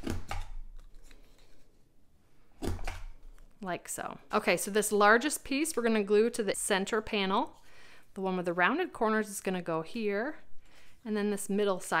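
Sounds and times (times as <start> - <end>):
faint paper handling: 0.8 - 1.9.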